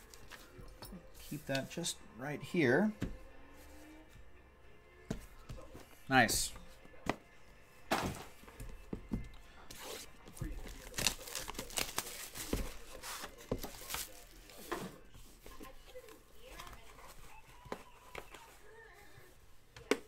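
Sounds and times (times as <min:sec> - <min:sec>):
plastic and cardboard handling: 0:09.7 - 0:18.7
plastic shrink-wrap tearing: 0:10.7 - 0:12.4.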